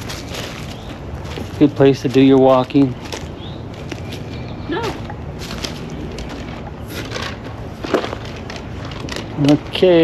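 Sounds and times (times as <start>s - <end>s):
footsteps on sandy dirt path: 0.0s - 9.3s.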